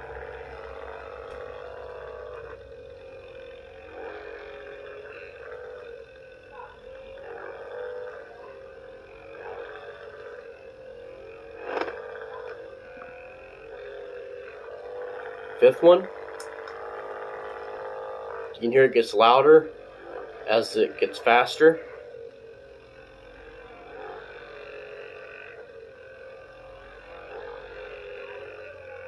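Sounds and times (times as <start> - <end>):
massage gun buzzing hum: 0.0 - 29.0.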